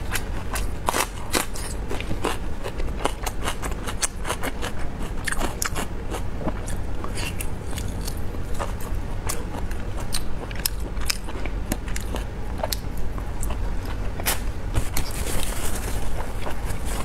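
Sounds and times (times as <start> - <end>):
steady low hum: 0.0 - 17.0
chewing and mouth clicks: 0.1 - 15.5.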